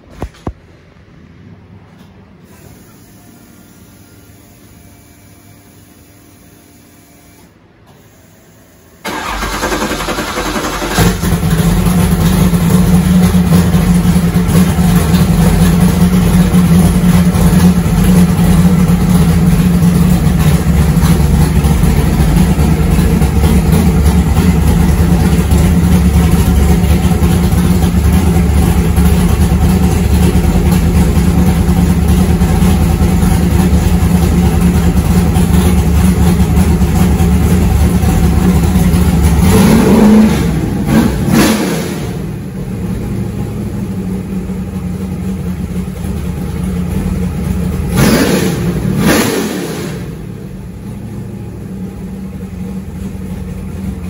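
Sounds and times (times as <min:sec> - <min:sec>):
loud engine running and revving: 0:09.2 - 0:42.6, 0:47.8 - 0:50.4.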